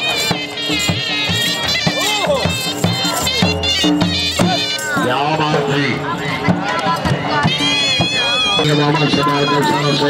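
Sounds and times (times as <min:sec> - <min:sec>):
dhol drum strokes: 0:00.0 - 0:10.0
reedy wind instrument melody: 0:00.0 - 0:10.0.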